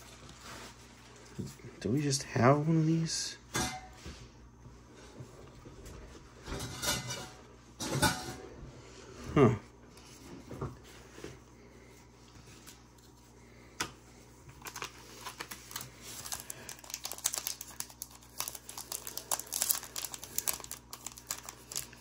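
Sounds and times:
wrapper crinkling: 14.5s - 22.0s.

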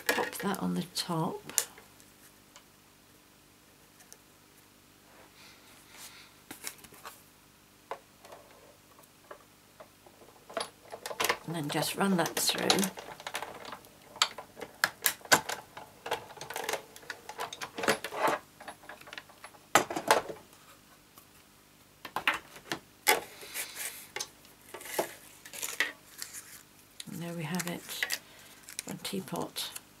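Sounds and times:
plates and cardstock rustling: 23.1s - 26.7s.

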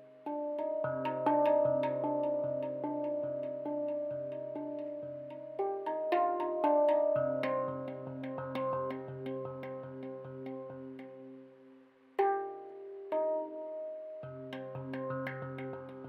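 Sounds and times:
handpan notes ringing: 0.0s - 11.4s, 12.2s - 16.0s.

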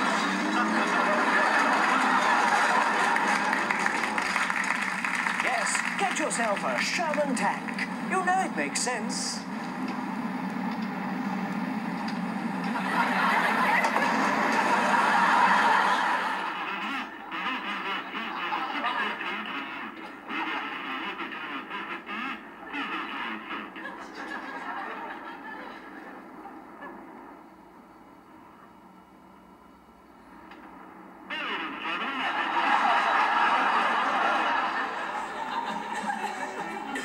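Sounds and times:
studio audience laughter: 0.0s - 6.7s, 12.5s - 27.4s, 31.8s - 37.0s.

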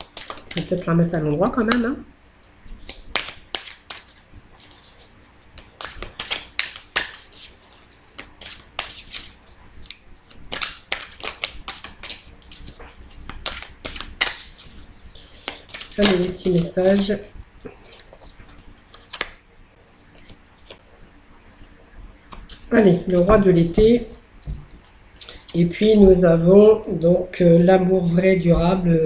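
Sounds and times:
cards being shuffled: 0.0s - 0.8s, 2.7s - 17.2s, 17.8s - 19.4s, 20.1s - 20.8s, 22.3s - 26.2s.

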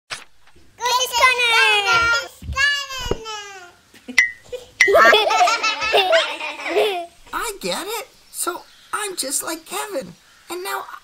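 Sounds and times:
cartoon voices laughing: 4.0s - 7.2s.

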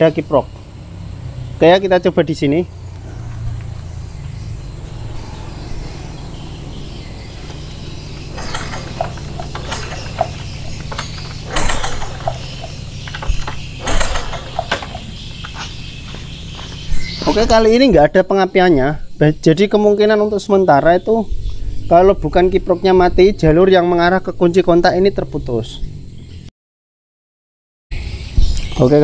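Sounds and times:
steady low hum: 0.0s - 18.1s
motorcycle engine kick starting: 5.8s - 17.8s.

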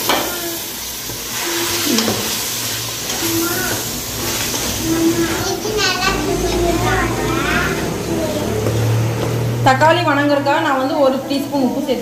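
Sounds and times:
children chattering: 0.0s - 9.4s
child calling out: 0.2s - 0.7s, 3.2s - 3.9s, 4.8s - 8.5s.

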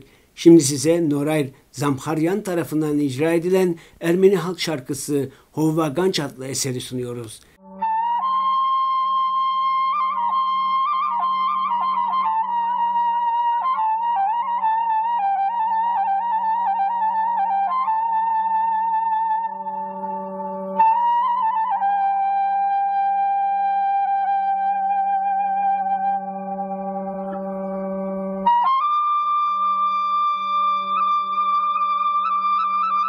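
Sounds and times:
folk tune on wind instrument: 7.6s - 33.0s.

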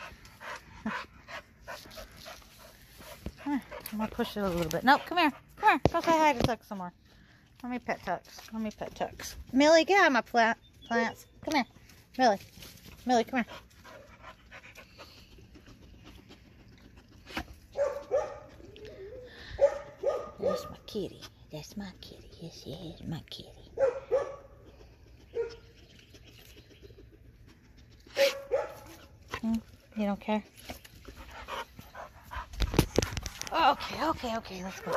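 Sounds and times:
dog panting: 0.0s - 6.3s, 13.4s - 18.8s, 31.0s - 34.9s
dog sniffing: 23.8s - 29.5s.

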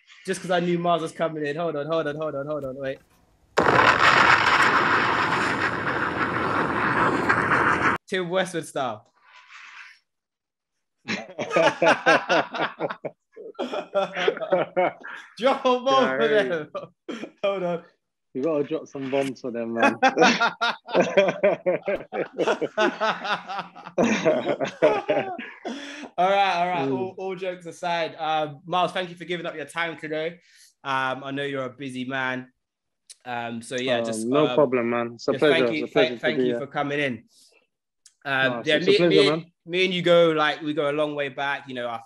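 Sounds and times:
dense rushing noise: 3.6s - 8.0s
men laughing: 11.1s - 17.6s, 19.8s - 26.8s.

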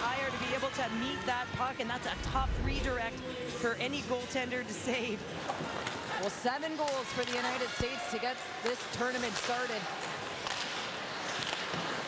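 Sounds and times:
crowd noise in arena: 0.0s - 12.0s.

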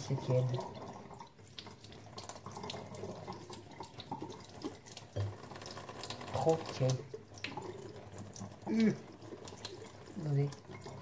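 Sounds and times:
tap water running into sink: 0.0s - 11.0s.

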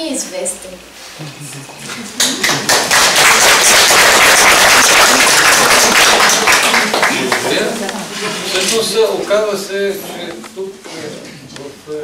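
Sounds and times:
audience applauding: 2.1s - 7.8s.

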